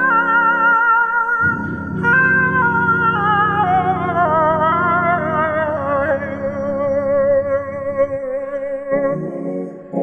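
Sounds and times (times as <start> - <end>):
man singing with vibrato: 0.0 - 9.2
sustained instrumental chords: 0.0 - 10.0.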